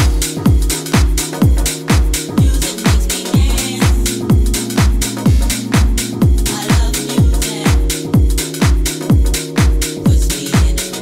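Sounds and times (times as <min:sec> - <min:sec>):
deep house music: 0:00.0 - 0:11.0
kick drum: 0:00.0 - 0:11.0.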